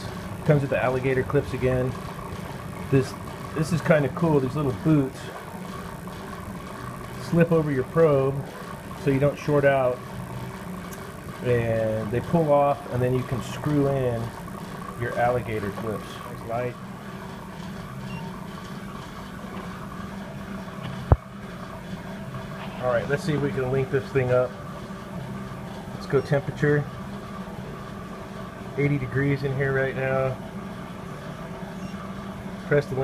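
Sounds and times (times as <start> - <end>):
steady mechanical hum: 0.0 - 33.0.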